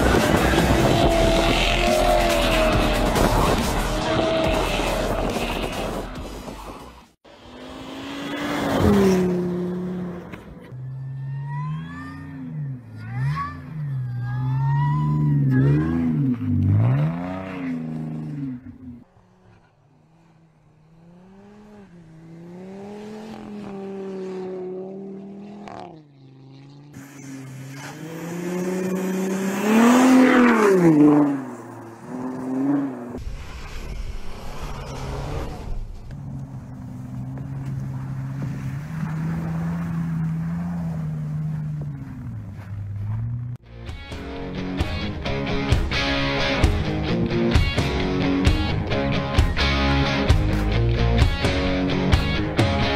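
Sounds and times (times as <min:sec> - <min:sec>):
car engines revving: 0:00.0 - 0:43.7.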